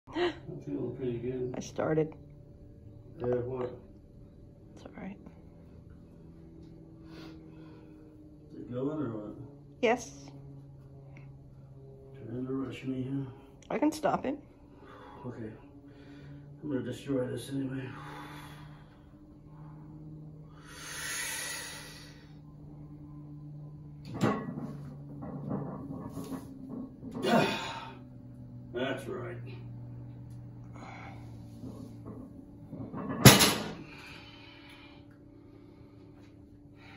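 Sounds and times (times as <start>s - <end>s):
faint low hum: 0.0s - 36.9s
man breathing: 14.6s - 16.6s, 17.8s - 22.5s, 30.6s - 31.6s, 33.8s - 36.9s.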